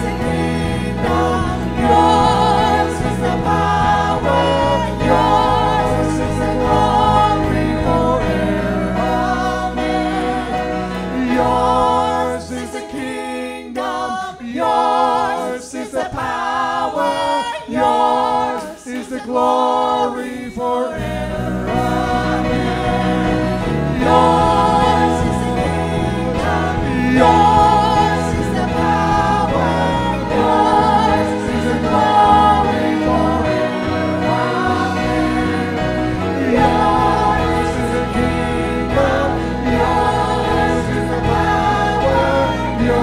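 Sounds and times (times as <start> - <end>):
band low accompaniment: 0.0 - 12.6, 21.0 - 43.0
congregation singing a hymn: 0.0 - 43.0.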